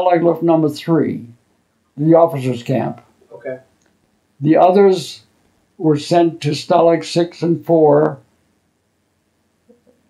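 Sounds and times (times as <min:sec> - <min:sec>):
man speaking: 0:00.0 - 0:01.4, 0:02.0 - 0:03.6, 0:04.4 - 0:08.2
faint low murmur: 0:00.0 - 0:03.8.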